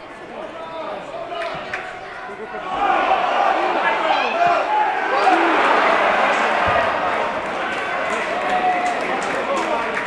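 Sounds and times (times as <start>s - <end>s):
crowd shouting: 2.4s - 9.3s.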